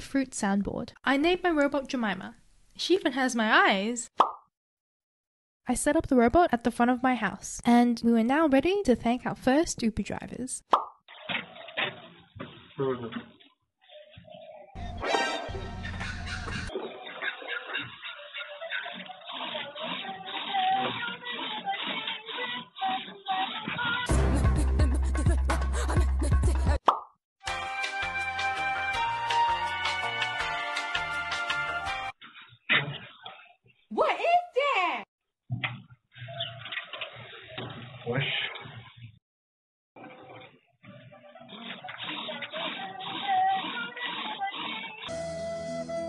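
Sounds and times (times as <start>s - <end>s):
robot singing through speaker: 41.9s - 45.1s.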